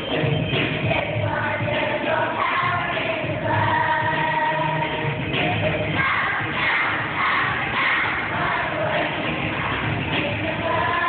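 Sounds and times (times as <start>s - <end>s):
children's choir singing: 0.0s - 11.0s
musical accompaniment: 0.0s - 11.0s.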